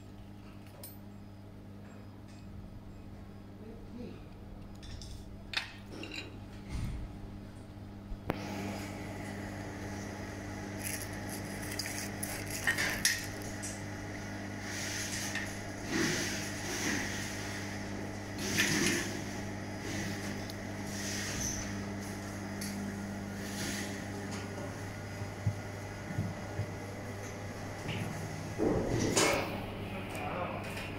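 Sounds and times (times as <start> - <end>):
machine electrical hum: 0.0 - 30.9.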